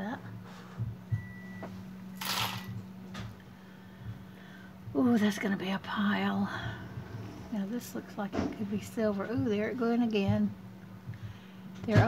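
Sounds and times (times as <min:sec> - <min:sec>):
steady low hum: 0:00.0 - 0:12.0
metal jewelry clinking: 0:02.2 - 0:02.8.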